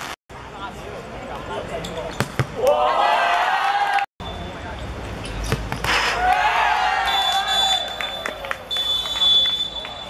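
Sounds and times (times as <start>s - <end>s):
young voices shouting and cheering: 2.6s - 4.1s.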